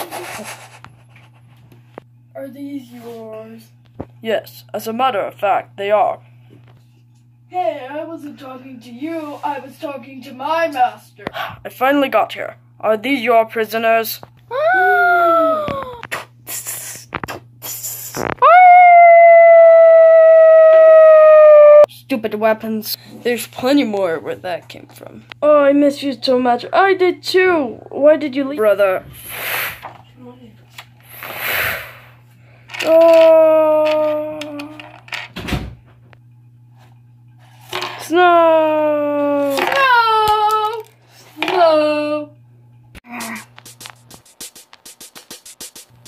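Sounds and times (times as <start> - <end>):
steady low hum: 0.0 - 46.0
wolf-like howl: 18.4 - 21.9.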